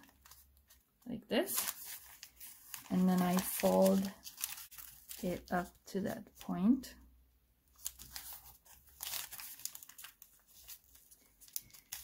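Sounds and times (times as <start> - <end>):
paper bag crinkling: 1.5 - 5.3, 7.8 - 12.0.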